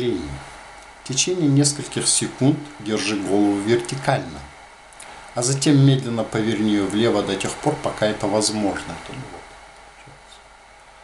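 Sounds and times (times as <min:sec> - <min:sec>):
person speaking: 0:00.0 - 0:10.5
soft hiss with low hum: 0:00.0 - 0:11.0.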